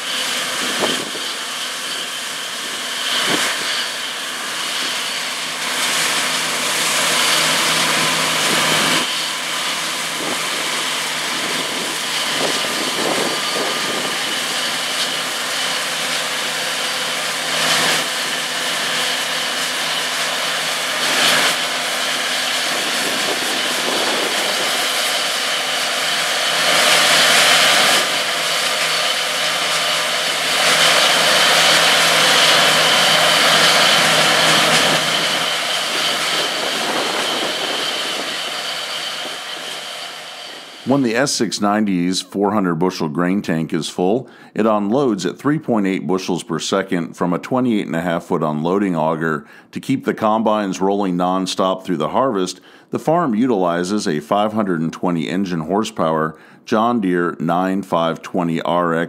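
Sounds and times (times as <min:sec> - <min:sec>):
engine hum: 0:00.0 - 0:41.9
threshing machinery whirring: 0:00.0 - 0:42.1.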